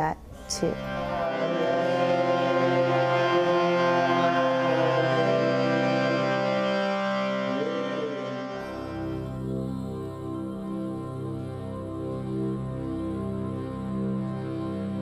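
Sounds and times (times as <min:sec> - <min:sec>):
harmonium chords: 0:00.4 - 0:15.0
person singing a chant: 0:00.4 - 0:15.0.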